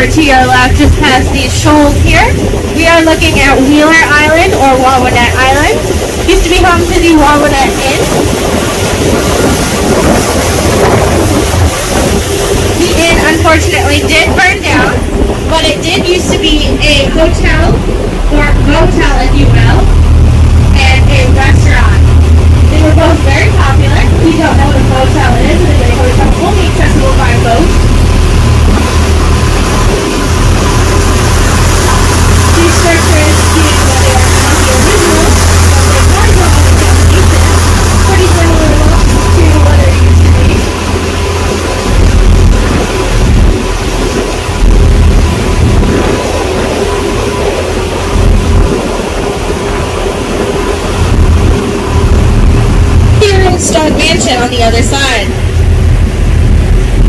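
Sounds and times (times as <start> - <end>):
faint passenger voices: 0.0 - 19.9, 22.7 - 27.7, 31.8 - 40.8, 53.2 - 55.4
boat engine droning: 0.0 - 57.0
wind noise on microphone: 0.0 - 57.0
person talking: 12.8 - 19.8, 20.8 - 22.0, 22.7 - 27.7, 53.2 - 55.4.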